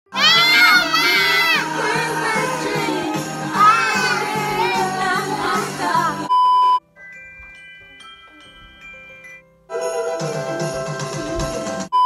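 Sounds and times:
child shouting excitedly: 0:00.1 - 0:01.6.

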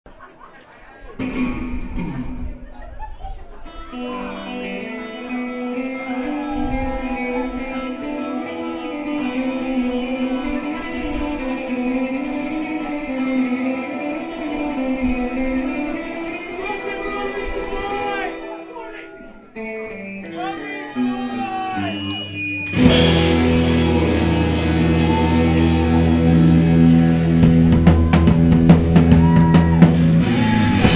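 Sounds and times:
rock band playing live: 0:01.2 - 0:02.8, 0:03.7 - 0:30.9
electric guitar chord ringing: 0:03.9 - 0:30.9
cymbals keeping a beat: 0:22.1 - 0:30.9.

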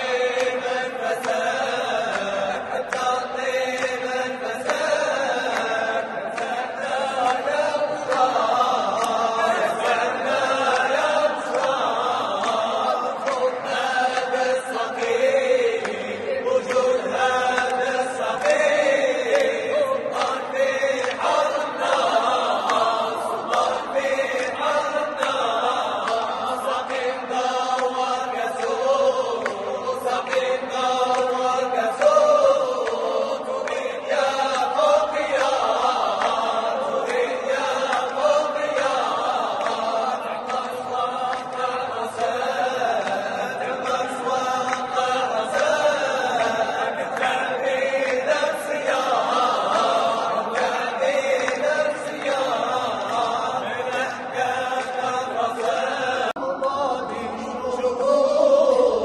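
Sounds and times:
male choir chanting a cappella: 0:00.0 - 0:59.0.

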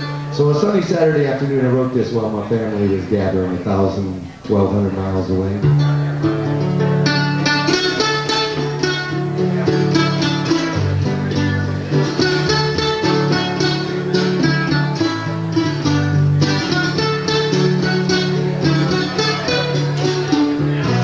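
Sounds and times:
fingerpicked acoustic blues guitar: 0:00.0 - 0:21.0.

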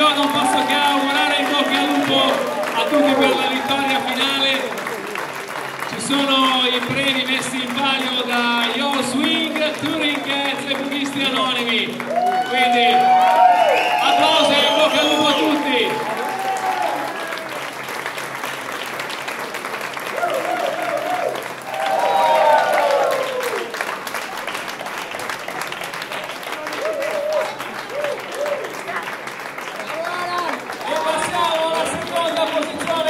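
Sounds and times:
crowd clapping: 0:00.0 - 0:33.0.

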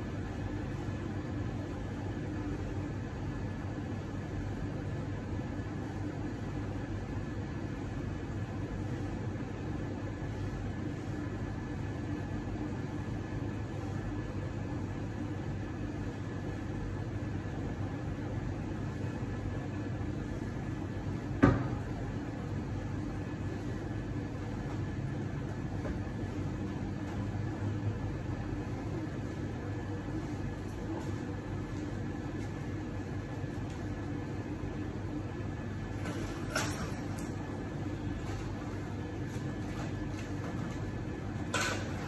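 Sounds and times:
low machinery hum: 0:00.0 - 0:42.0.

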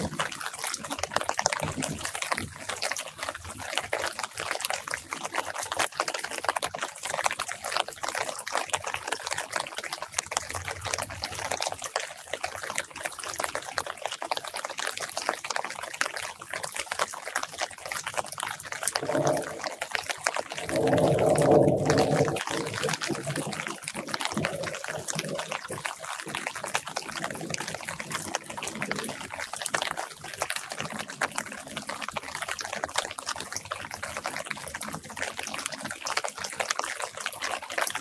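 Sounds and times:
rain pattering on leaves: 0:00.0 - 0:38.0.

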